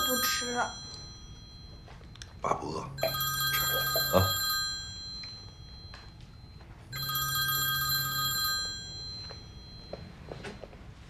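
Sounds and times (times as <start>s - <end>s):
phone ringtone: 0.0s - 11.0s.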